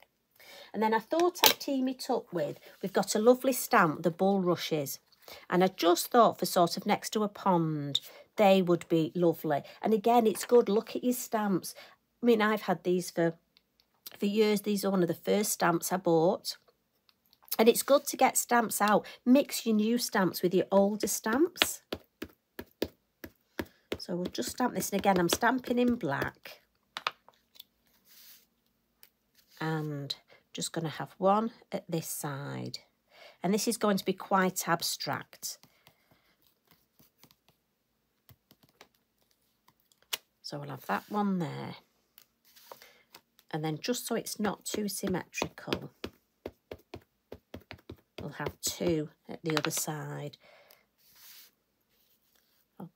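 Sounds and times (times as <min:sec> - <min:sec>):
ink pad tapping on stamp: 0:44.7 - 0:48.6.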